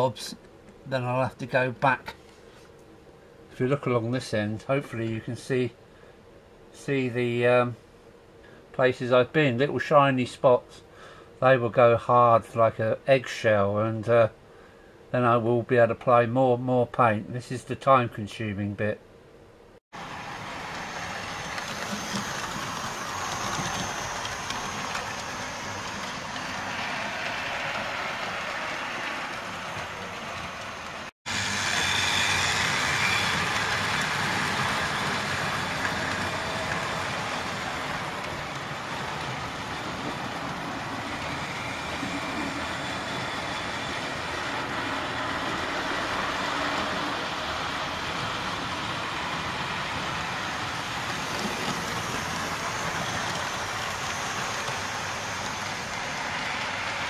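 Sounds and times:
model train running on track: 20.0s - 57.0s.

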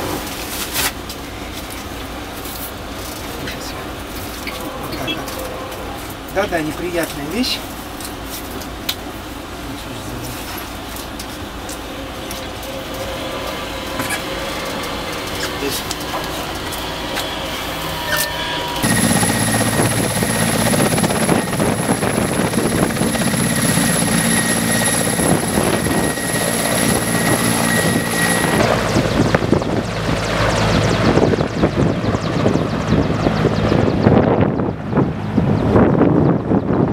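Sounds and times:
helicopter turbine whine: 1.1s - 36.9s
helicopter rotor beat: 1.4s - 9.6s, 10.6s - 36.9s.

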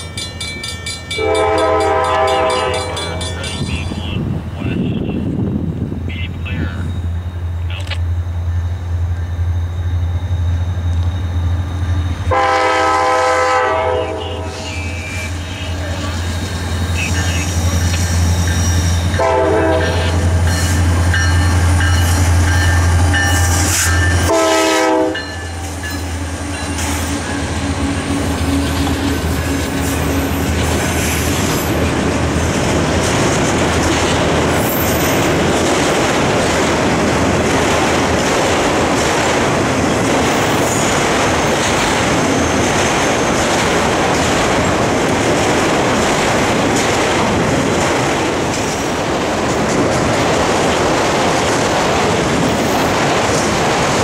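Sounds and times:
locomotive engine droning: 0.0s - 50.4s.

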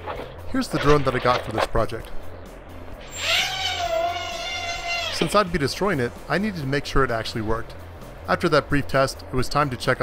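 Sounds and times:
quadcopter propellers whining: 3.0s - 5.5s.

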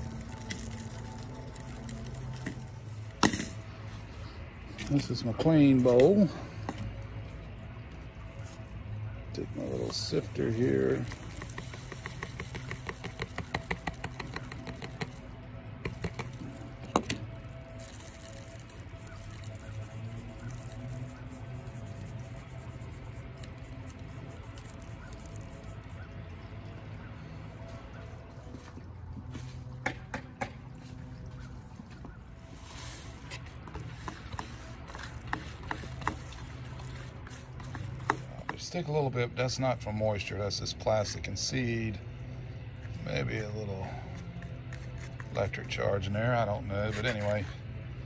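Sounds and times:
seeds ticking in a wire sieve: 0.0s - 2.8s, 10.0s - 15.3s, 17.7s - 21.6s
faint music: 0.0s - 48.0s.

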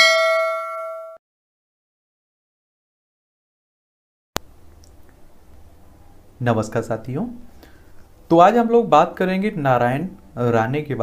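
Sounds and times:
bell-like ding: 0.0s - 1.2s.

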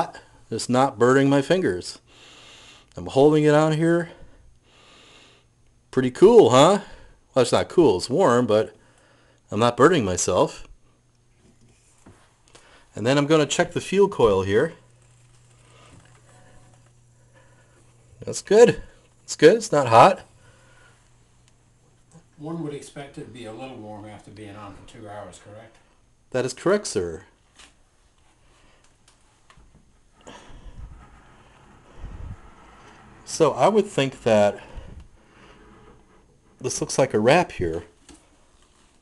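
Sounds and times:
tube radio hum and hiss: 0.0s - 39.0s.

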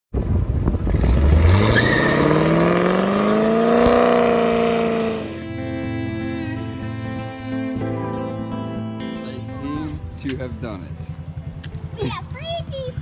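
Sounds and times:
guitar music: 2.8s - 13.0s.

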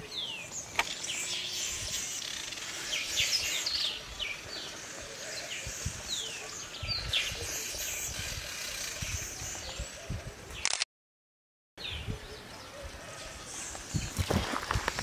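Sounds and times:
birds chirping: 0.0s - 10.7s, 11.8s - 15.0s.

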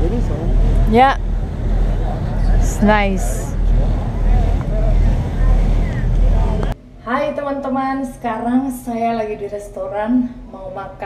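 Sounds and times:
boat engine rumble: 0.0s - 6.8s
water noise: 0.0s - 6.8s.

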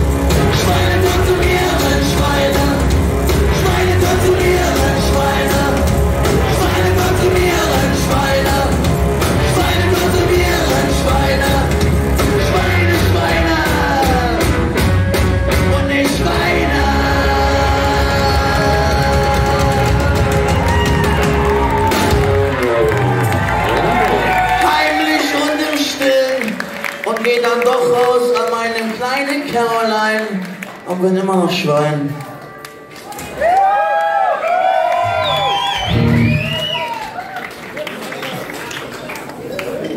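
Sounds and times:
live rock band: 0.0s - 25.3s, 35.1s - 36.8s.

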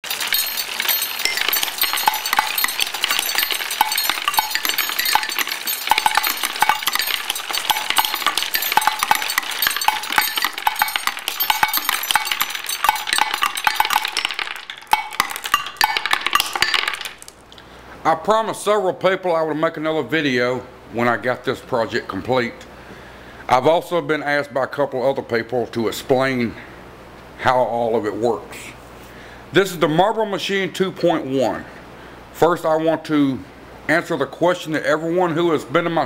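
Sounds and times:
marbles clattering on wood and metal: 0.0s - 17.4s.

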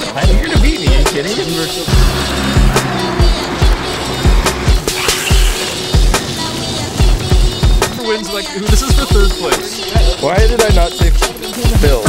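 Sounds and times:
electronic dub music: 0.2s - 12.0s.

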